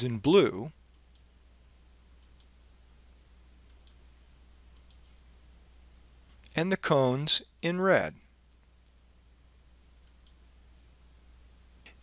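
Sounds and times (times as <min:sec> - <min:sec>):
narrator speaking: 0:00.0 - 0:00.8, 0:06.5 - 0:08.3
steady low hum: 0:00.0 - 0:12.0
computer mouse clicks: 0:02.2 - 0:02.5, 0:03.7 - 0:04.0, 0:04.8 - 0:05.1, 0:10.0 - 0:10.4.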